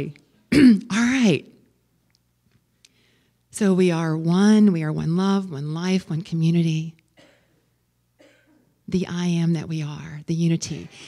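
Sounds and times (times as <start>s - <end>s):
faint short coughs: 7.2s - 8.8s.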